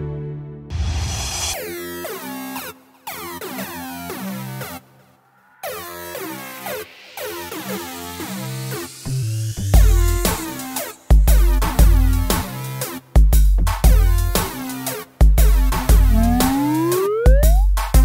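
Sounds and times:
electronic music with synth notes: 15.8 - 18.0
heavy bass line: 15.9 - 18.0.

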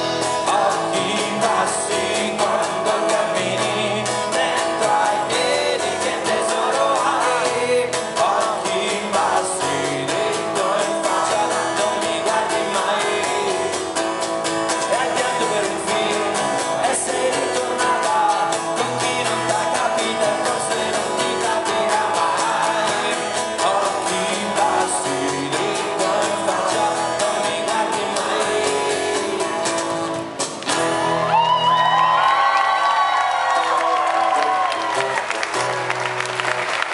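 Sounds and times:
lead vocal singing: 0.0 - 31.4
strummed acoustic guitars: 0.0 - 36.9
audience cheering: 31.1 - 36.9.

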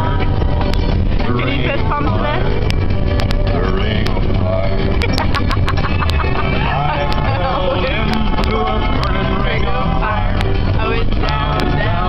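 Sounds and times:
car road and engine rumble: 0.0 - 12.0
people singing along: 5.8 - 12.0.

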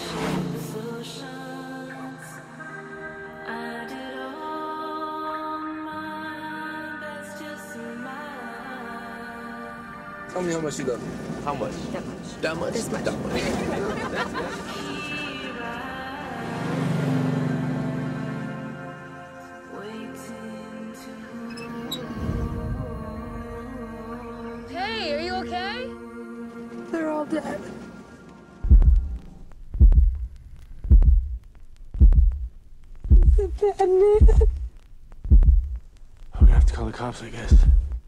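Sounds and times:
background music: 0.0 - 30.5
van engine driving past: 10.3 - 19.3
deep heartbeat-like thuds: 28.6 - 38.0.

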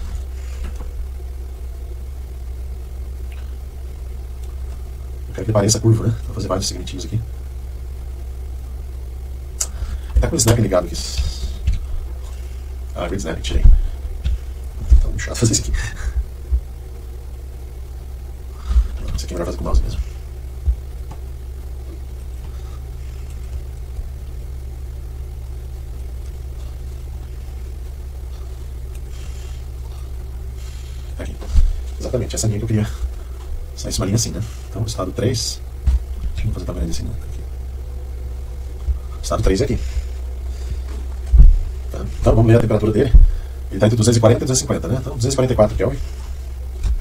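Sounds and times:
steady low hum: 0.0 - 47.0
soft thump: 41.3 - 41.7.

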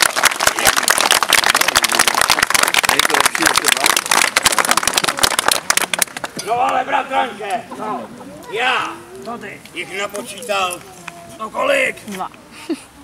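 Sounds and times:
children applauding: 0.0 - 6.3
faint voices: 0.4 - 13.0.

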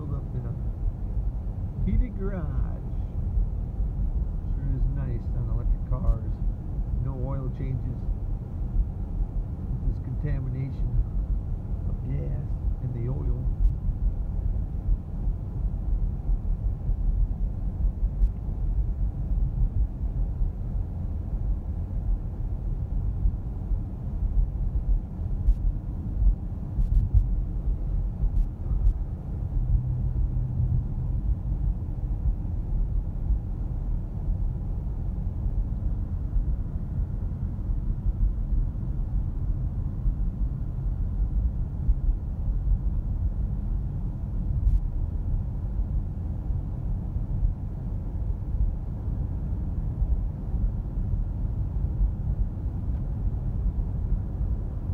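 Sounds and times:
road and tyre rumble: 0.0 - 54.9.

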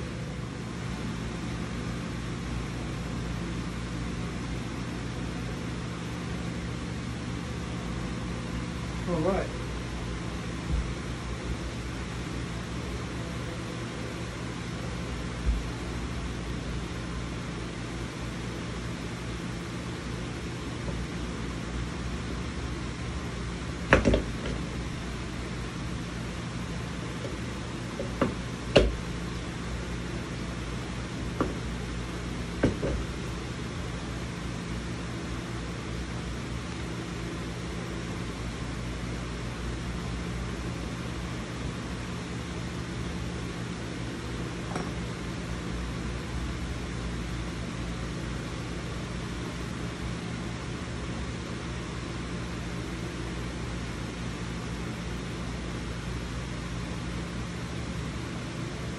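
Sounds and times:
low room hum: 0.0 - 58.9.

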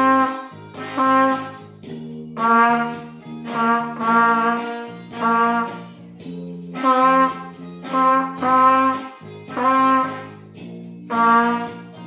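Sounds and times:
trumpet held notes: 0.0 - 1.7, 2.4 - 6.0, 6.7 - 10.4, 11.1 - 12.0.

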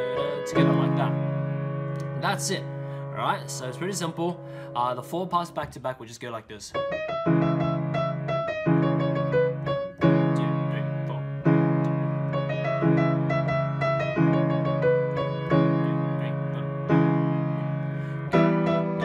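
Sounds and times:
piano chords and melody: 0.0 - 5.9, 6.7 - 19.0.

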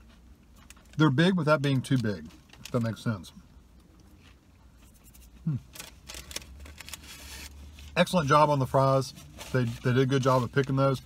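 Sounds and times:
paper rustle: 4.8 - 8.0, 9.2 - 10.9.

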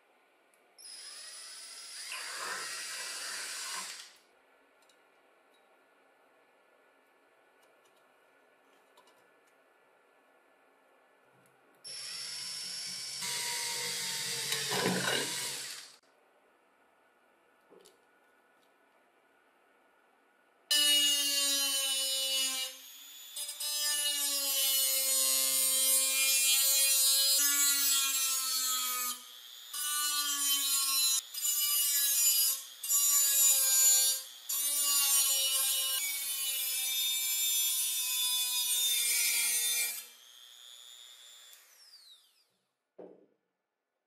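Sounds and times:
rotary tool cutting metal: 11.9 - 16.0, 20.7 - 42.3.

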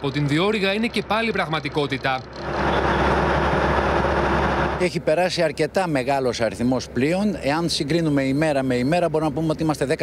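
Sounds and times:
engine running: 0.0 - 5.5.

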